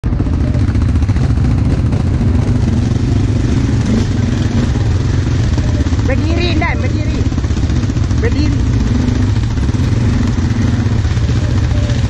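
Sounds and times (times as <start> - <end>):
quad bike engine rumbling: 0.0 - 12.0.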